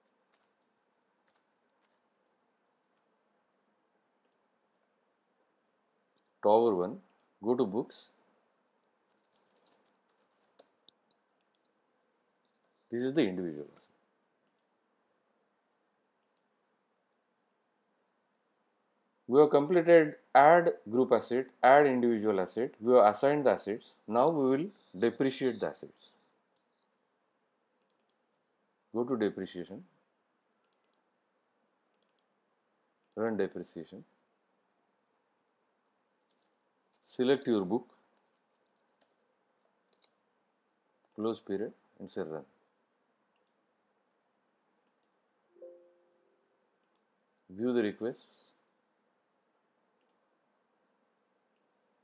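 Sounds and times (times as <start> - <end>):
computer mouse clicks: 4.2 - 4.5, 8.7 - 12.4, 14.4 - 14.7, 27.8 - 28.2, 30.6 - 31.1, 31.9 - 32.3, 36.1 - 40.2, 43.3 - 43.6, 44.8 - 45.2, 46.8 - 47.1, 50.0 - 50.2.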